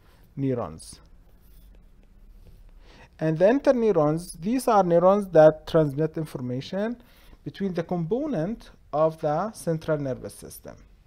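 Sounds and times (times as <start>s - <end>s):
stylus writing on glass screen: 1.2s - 2.7s.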